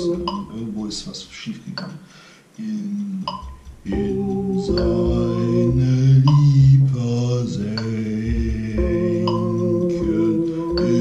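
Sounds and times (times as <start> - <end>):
man singing slow low melody: 0.0 - 0.8, 3.9 - 11.0.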